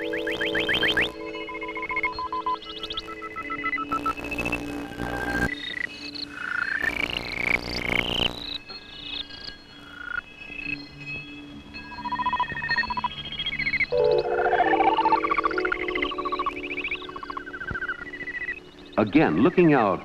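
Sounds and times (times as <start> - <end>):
warbling synthesizer tones: 0.0 - 1.2, 13.9 - 18.6
bursts of hiss: 6.8 - 8.5.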